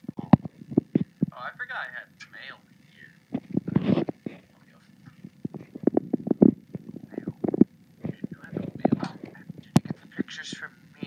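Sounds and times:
low thumps: 3.3 - 4.4, 5.1 - 10.3.

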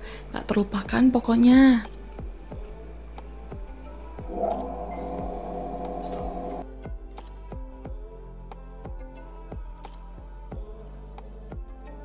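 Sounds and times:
electric water pump humming: 4.2 - 6.6.

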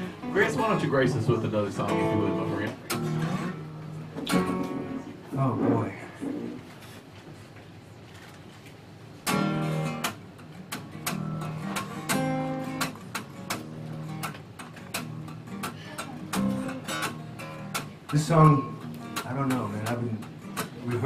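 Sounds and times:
acoustic guitar strumming: 0.0 - 5.1, 9.2 - 21.0.

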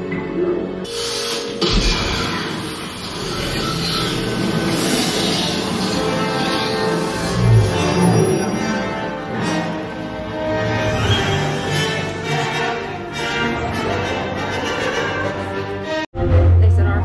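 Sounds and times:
dark orchestral music: 0.0 - 17.0.

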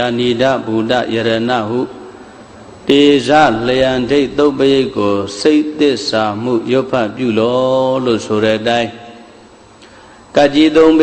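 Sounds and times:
man chanting: 0.0 - 2.0, 2.8 - 9.2, 10.4 - 11.0.

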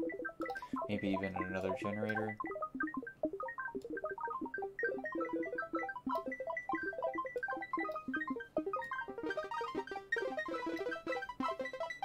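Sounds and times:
synthesizer plucked notes: 0.0 - 12.0.

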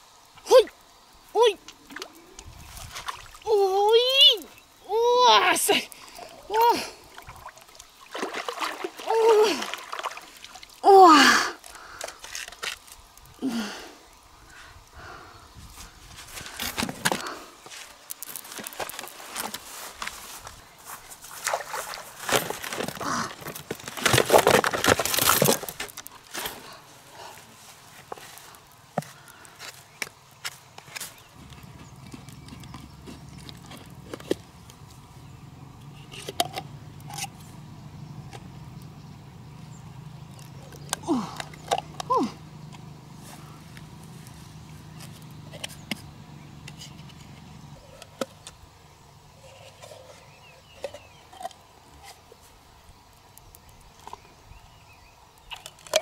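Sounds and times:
footsteps through long grass: 15.7 - 34.0, 43.1 - 45.9.

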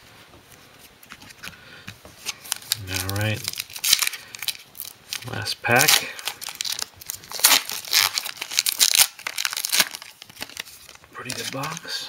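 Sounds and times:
foil pack tearing and crinkling: 2.3 - 11.9.

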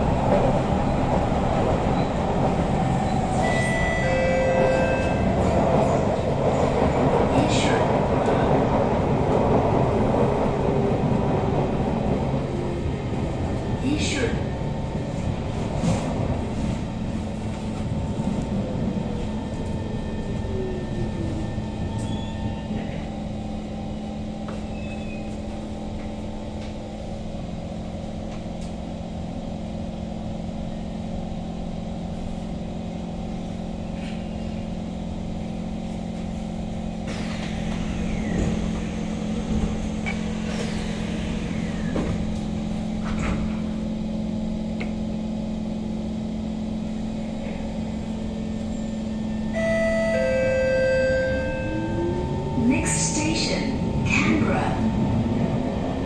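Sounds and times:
train rolling rumble: 0.0 - 56.0.

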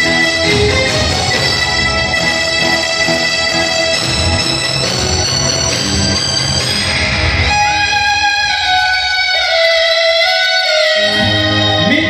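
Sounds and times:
drums: 0.0 - 9.4
keyboard chords: 0.0 - 12.0
sustained sliding melody line: 0.0 - 12.0.

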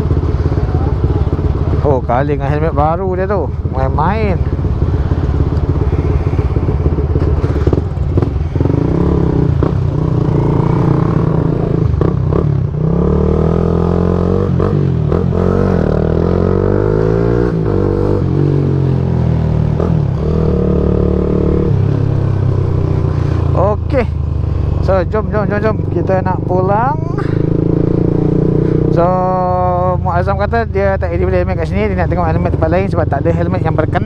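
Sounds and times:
motorcycle engines revving: 0.0 - 34.0.

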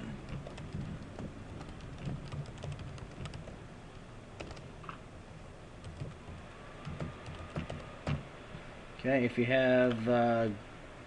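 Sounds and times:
computer keyboard typing: 0.2 - 3.6, 4.4 - 4.7, 5.8 - 8.2.

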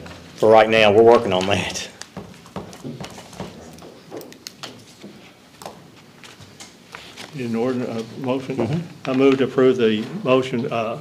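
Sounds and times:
papers and pens tapping: 1.1 - 10.2.

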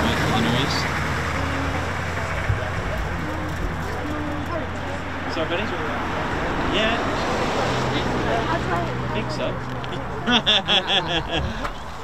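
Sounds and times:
people chatting: 0.0 - 11.1.

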